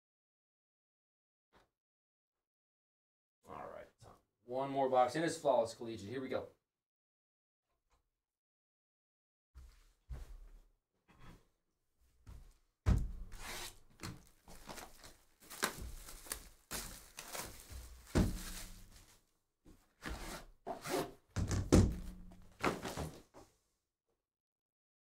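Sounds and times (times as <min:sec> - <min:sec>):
cardboard scraping: 0:13.2 - 0:13.8, 0:14.5 - 0:19.1, 0:22.2 - 0:23.2
plastic shrink-wrap rustling: 0:14.2 - 0:19.1.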